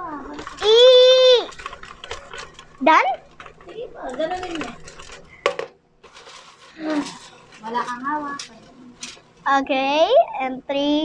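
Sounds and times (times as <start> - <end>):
paper slips rustling in bucket: 6.0 - 9.2.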